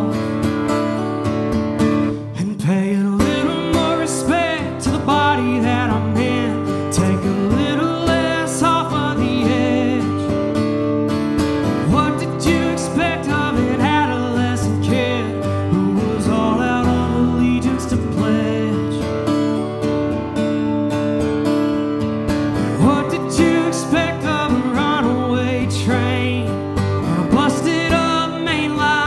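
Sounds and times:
acoustic guitar strumming: 0.0s - 29.0s.

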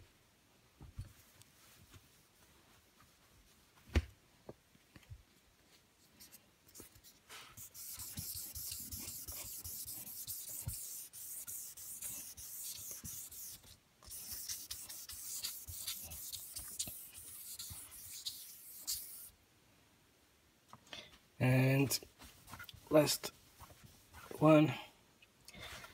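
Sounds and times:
sandpaper scraping wet surface: 7.6s - 19.3s.

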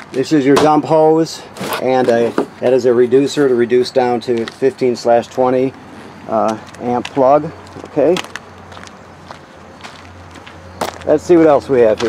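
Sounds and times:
footsteps on asphalt: 3.4s - 12.0s.

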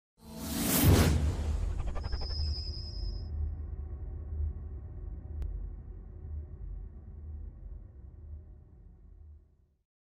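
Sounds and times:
whoosh: 0.3s - 3.3s
deep bass rumble: 3.2s - 9.5s.

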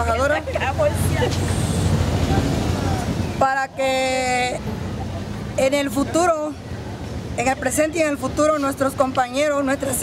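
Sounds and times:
woman speaking: 0.0s - 1.4s.

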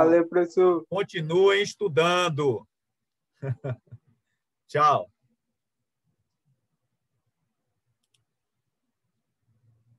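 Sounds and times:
faint quick clicks: 8.0s - 8.3s.

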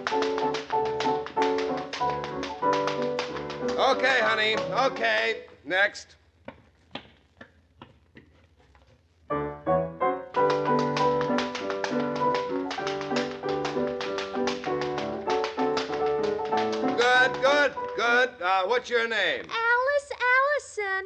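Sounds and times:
quick tap dance taps: 0.0s - 5.4s, 10.3s - 18.4s
piano rhythm: 0.0s - 5.6s, 9.3s - 18.9s
tap shoes clicking: 0.0s - 5.6s, 10.3s - 19.5s.

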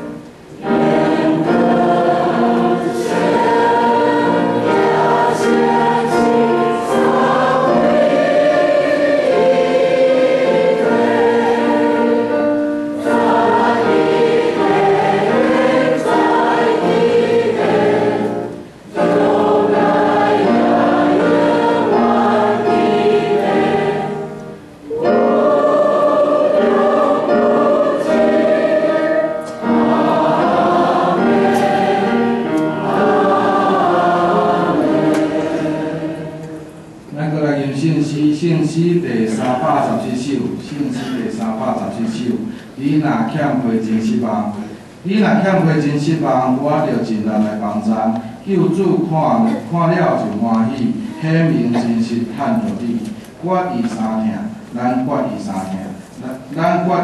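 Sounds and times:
church choir singing: 0.0s - 56.2s.

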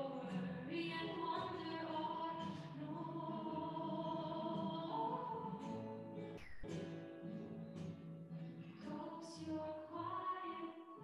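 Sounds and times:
group singing a hymn: 0.8s - 6.4s.

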